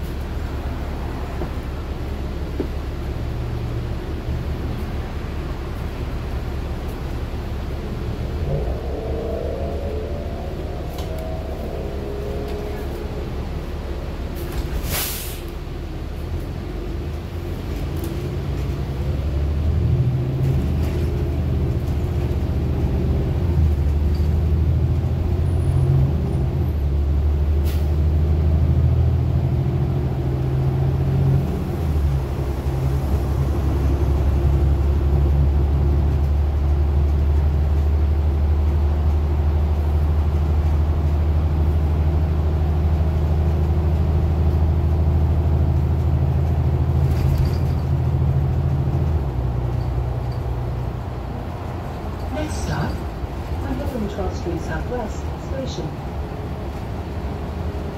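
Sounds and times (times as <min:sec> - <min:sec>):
bus engine rumble: 0:00.0 - 0:57.9.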